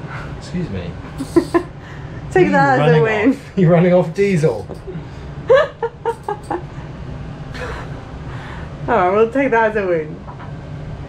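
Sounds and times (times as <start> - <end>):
air conditioner humming: 0.0 - 11.0
breathy exhale: 1.1 - 2.3, 7.5 - 8.8.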